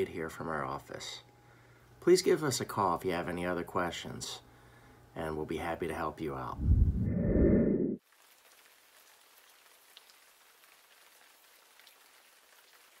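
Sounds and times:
microphone handling rumble: 6.6 - 8.0.

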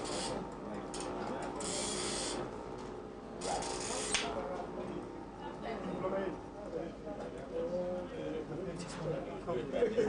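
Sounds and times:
short mechanical rasps: 1.6 - 2.4.

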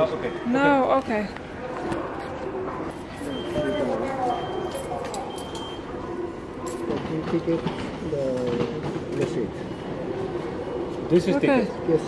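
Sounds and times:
railway station background noise: 0.0 - 12.0.

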